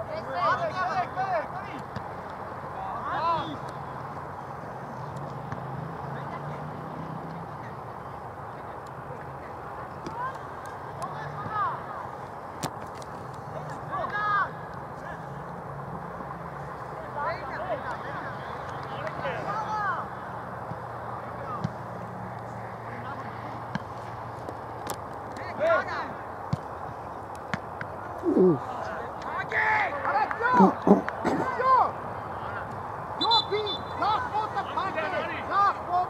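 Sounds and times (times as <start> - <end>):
distant players shouting: 28.2 - 36.0.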